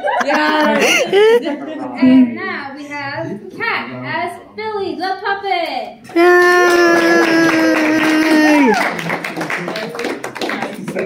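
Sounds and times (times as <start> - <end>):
people clapping: 6.0 - 11.0.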